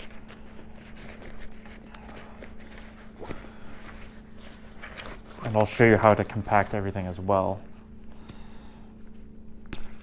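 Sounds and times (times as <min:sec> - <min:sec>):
soft fabric rustling: 0:00.0 - 0:07.3
faint steady hum: 0:00.0 - 0:10.0.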